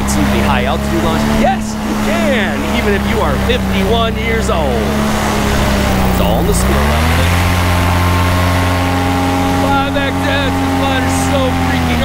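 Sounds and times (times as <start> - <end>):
paramotor engine running: 0.0 - 12.0.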